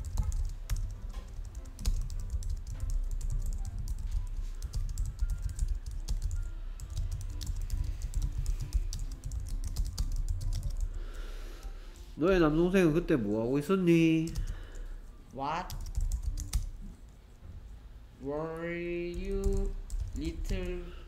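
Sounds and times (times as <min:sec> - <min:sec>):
low steady hum: 0:00.0 - 0:21.0.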